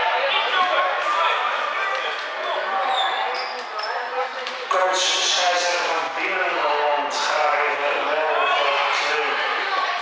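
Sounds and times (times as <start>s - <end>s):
people talking and calling: 0.0s - 10.0s.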